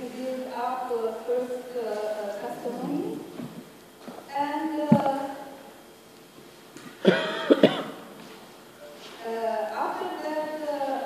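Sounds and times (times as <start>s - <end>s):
person clearing throat: 7.0s - 8.0s
person coughing: 7.0s - 8.0s.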